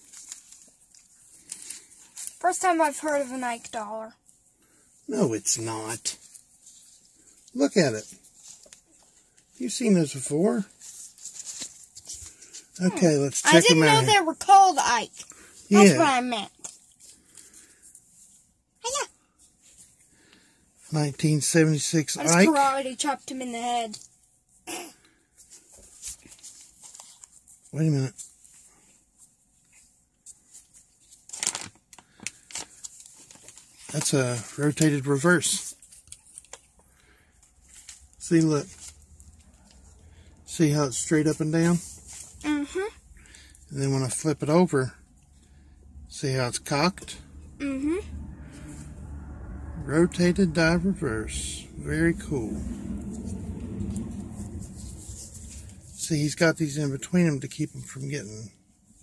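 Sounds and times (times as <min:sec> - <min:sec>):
rustling and scraping of card: 0:00.0 - 0:03.9, 0:05.9 - 0:18.5, 0:25.2 - 0:42.4, 0:52.3 - 0:58.2
cardboard rustling and scraping: 0:10.6 - 0:14.1
low steady hum: 0:44.8 - 0:58.2.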